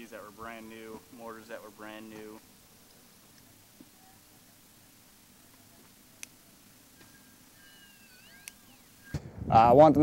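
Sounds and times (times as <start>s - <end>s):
faint high whistling glides: 6.9s - 9.4s.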